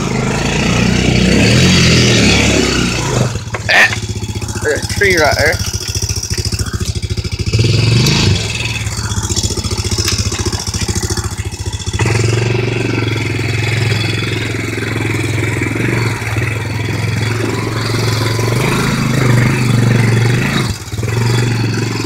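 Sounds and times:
quad bike engine revving: 0.0s - 22.0s.

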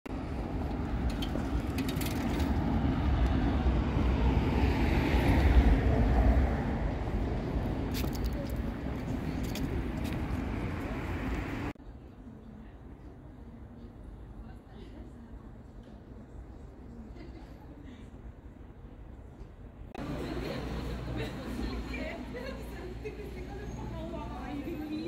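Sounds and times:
vehicle passing: 0.1s - 11.8s
street traffic noise: 0.1s - 25.0s.

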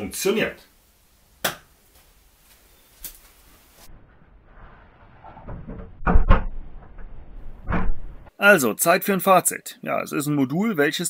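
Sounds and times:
rustling: 1.7s - 8.3s
door closing thumps: 5.4s - 8.3s.

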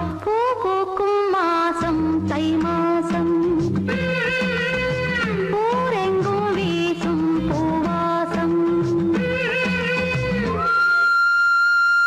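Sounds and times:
flute long high note: 10.5s - 12.0s.

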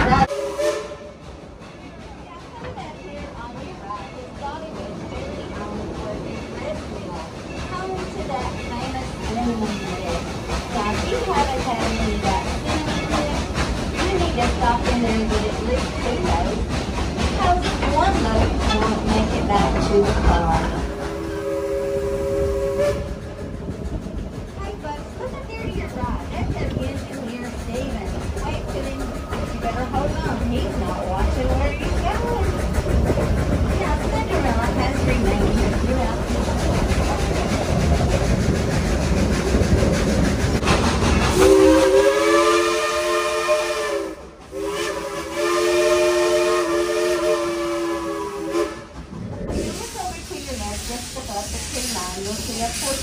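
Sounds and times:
steam train rumbling: 0.0s - 53.0s
steam whistle chord blasts: 0.3s - 1.2s, 21.2s - 23.1s, 41.4s - 48.8s.

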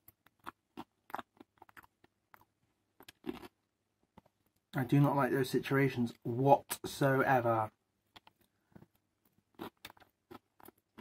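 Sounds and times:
person chewing food: 0.0s - 4.7s, 8.0s - 11.0s.

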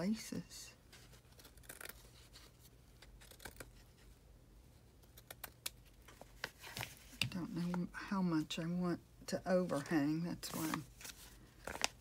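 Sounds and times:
scissors snipping lace: 5.0s - 5.8s.

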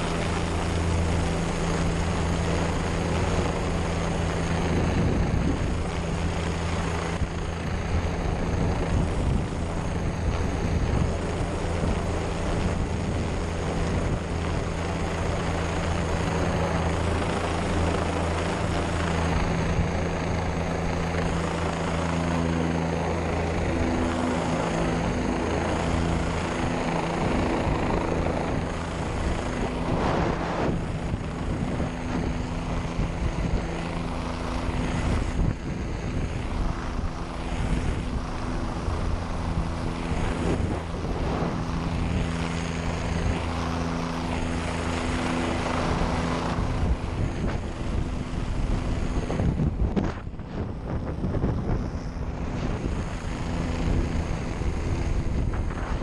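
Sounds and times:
helicopter rotor and engine hum: 0.0s - 56.0s
high turbine whine: 0.0s - 56.0s
air rushing: 29.6s - 31.5s, 40.1s - 42.5s.

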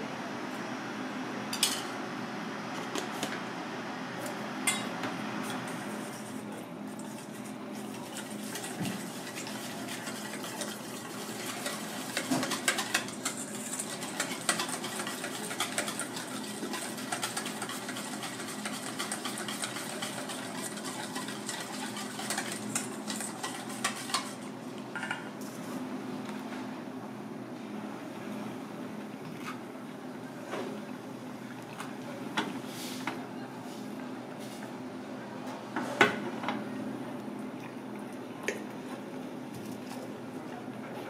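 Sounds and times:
whisk clinking in metal bowl: 8.0s - 24.5s.

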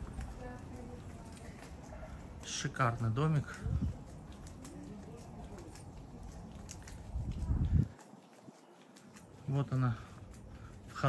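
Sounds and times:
footsteps on paving stones: 0.0s - 11.0s.

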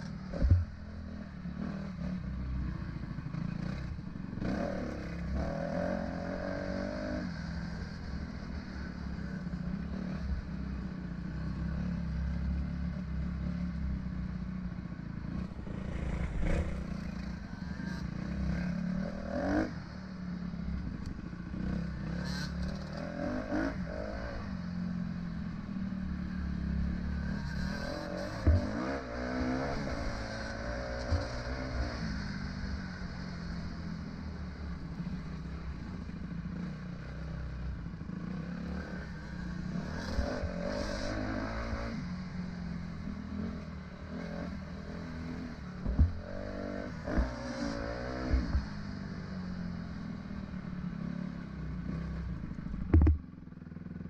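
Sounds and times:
dirt bike engine revving: 15.3s - 19.7s, 26.8s - 32.2s.

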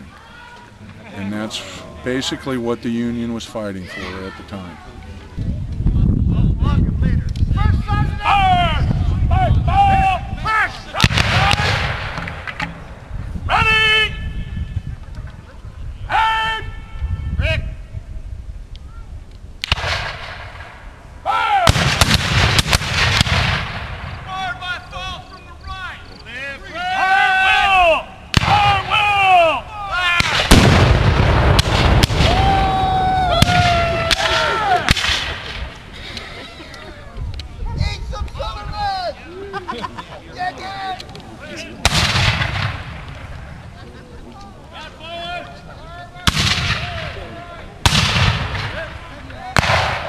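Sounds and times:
cannon booms: 11.0s - 12.9s, 19.6s - 20.8s, 21.6s - 24.4s, 28.3s - 29.1s, 30.2s - 35.8s, 41.8s - 43.4s, 46.2s - 47.2s, 47.8s - 50.0s
men shouting: 24.3s - 30.3s, 32.3s - 34.9s.

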